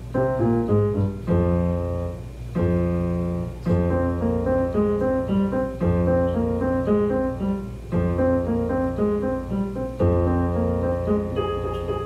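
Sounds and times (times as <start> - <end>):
digital piano melody: 0.0 - 12.0.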